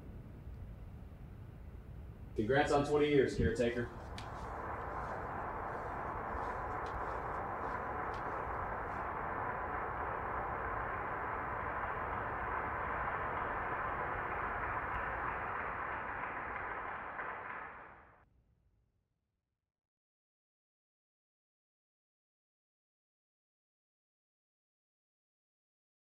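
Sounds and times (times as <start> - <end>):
steady rushing noise: 2.4 - 17.8.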